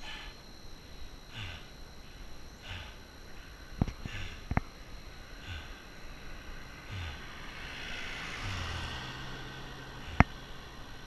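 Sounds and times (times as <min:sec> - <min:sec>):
car engine hum and tyre noise: 0:04.1 - 0:11.0.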